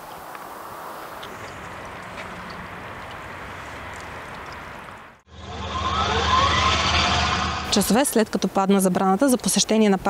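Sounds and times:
engine drone: 0:01.3 - 0:08.2
faint rising whine: 0:05.3 - 0:08.0.

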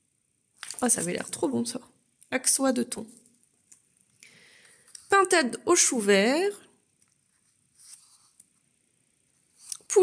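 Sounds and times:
book page turning: 0:00.6 - 0:01.4, 0:07.2 - 0:08.6.

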